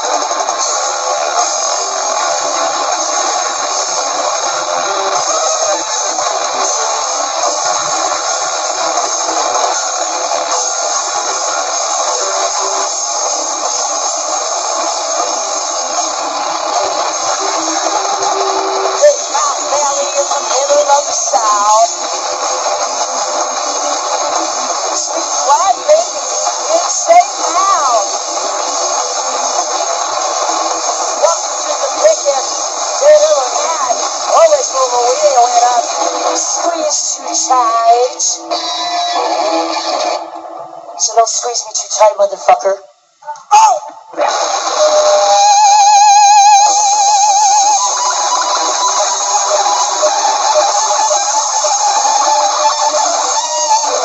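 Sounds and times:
noise rock band playing: 0.0 - 28.6, 38.5 - 40.3, 44.2 - 54.0.

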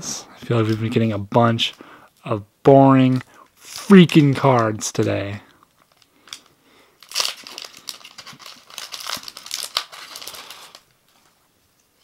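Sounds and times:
foil wrapper tearing and crinkling: 3.6 - 4.6, 5.8 - 10.9.

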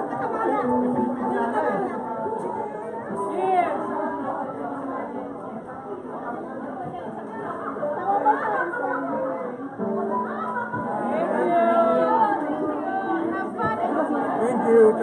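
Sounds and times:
crowd talking in a hall: 0.0 - 15.0.

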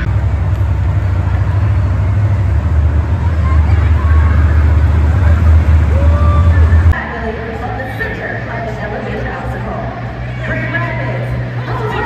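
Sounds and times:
monster truck engines rumbling: 0.0 - 12.0.

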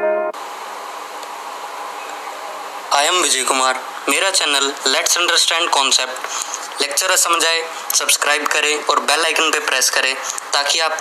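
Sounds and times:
piano-like keyboard music: 0.0 - 0.4
recording hiss with faint hum: 0.0 - 11.0.

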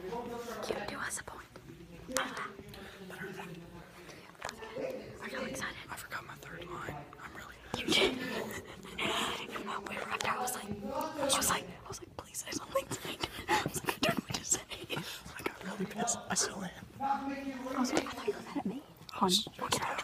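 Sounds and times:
person whispering: 0.1 - 16.9, 17.6 - 20.0.

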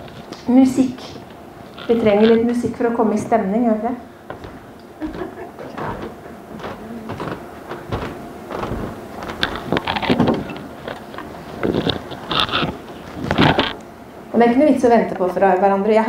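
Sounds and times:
footsteps on wooden stage: 4.2 - 13.8
knocks and thumps on wood: 4.3 - 10.7
acoustic guitar handling clatter: 4.3 - 13.8.

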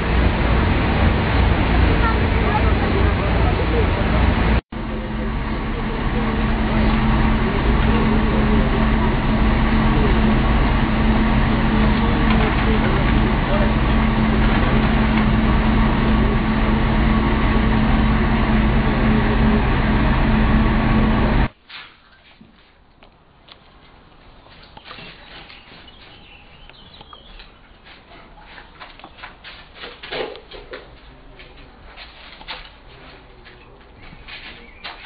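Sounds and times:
truck engine running: 0.0 - 21.5
indistinct voices: 1.2 - 21.5.

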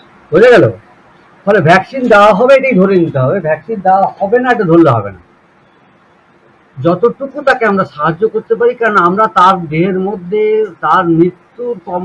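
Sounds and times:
man talking quickly: 0.3 - 5.2, 6.8 - 12.0.

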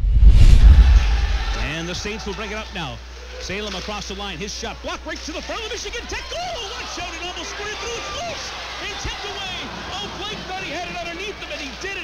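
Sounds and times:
deep rumble: 0.0 - 1.6
whoosh: 0.0 - 1.6.

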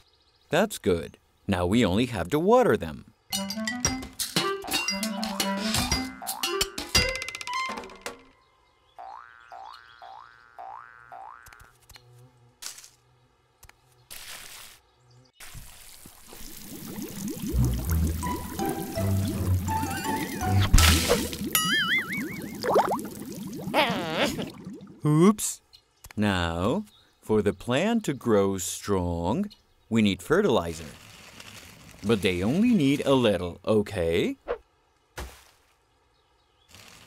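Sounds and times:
light children's music: 3.3 - 8.1, 17.6 - 21.3
springy cartoon boings: 9.0 - 11.8, 19.0 - 23.0
water pouring and splashing: 15.4 - 25.0.

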